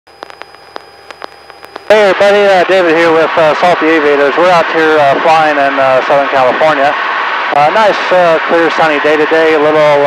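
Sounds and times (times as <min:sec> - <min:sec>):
sharp clicks: 0:00.1 - 0:01.9
electrical hiss with high whine: 0:00.1 - 0:10.0
man's voice: 0:01.9 - 0:07.0, 0:07.6 - 0:10.0.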